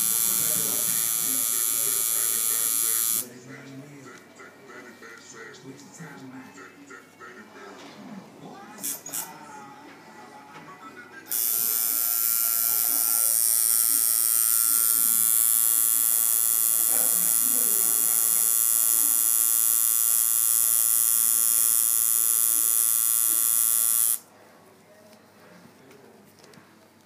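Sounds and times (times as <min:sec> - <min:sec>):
tattoo machine buzzing: 0:00.0 - 0:03.3, 0:11.3 - 0:24.3.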